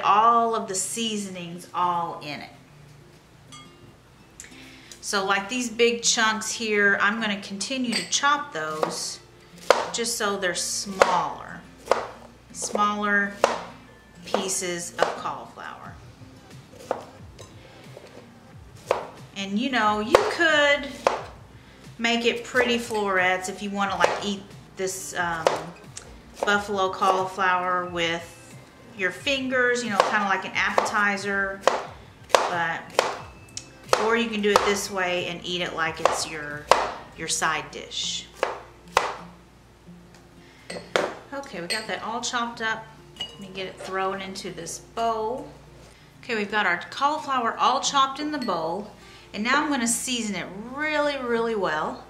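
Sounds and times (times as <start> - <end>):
quiet background music: 0.0 - 52.0
knife chopping on counter: 9.6 - 9.9, 10.9 - 11.2, 11.8 - 13.7, 14.3 - 15.2, 16.8 - 17.1, 18.9 - 19.2, 21.0 - 21.3, 24.0 - 24.3, 25.4 - 25.8, 29.9 - 31.0, 31.6 - 33.2, 33.9 - 34.8, 36.0 - 37.0, 38.4 - 39.2.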